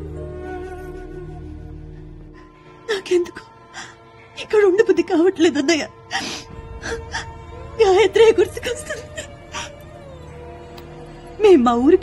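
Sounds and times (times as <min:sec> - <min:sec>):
mournful film score tone: 0:00.0 - 0:12.0
woman sobbing: 0:06.1 - 0:09.8.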